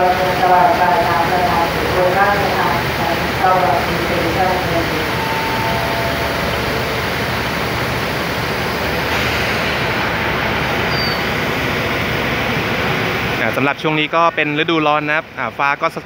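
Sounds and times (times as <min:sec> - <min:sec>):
train engines idling: 0:00.0 - 0:16.0.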